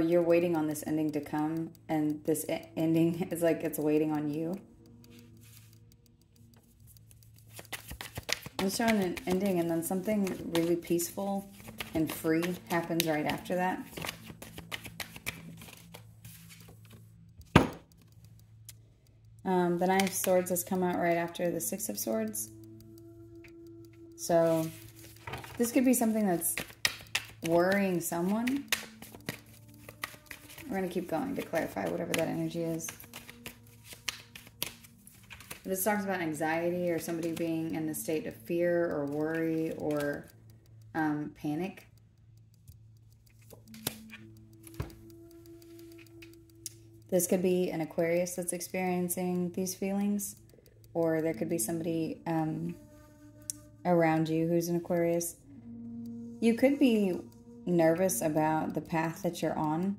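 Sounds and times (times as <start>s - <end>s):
cards being shuffled: 4.5s - 18.8s, 20.0s - 22.2s, 24.5s - 40.8s, 42.6s - 48.7s
cards sliding on tabletop: 13.9s - 16.7s.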